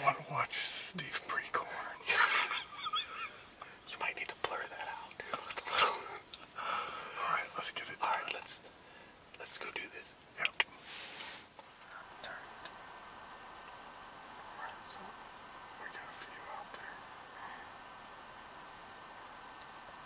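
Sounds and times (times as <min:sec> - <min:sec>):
people whispering: 0:00.0 - 0:08.7, 0:09.4 - 0:12.8, 0:14.3 - 0:17.8.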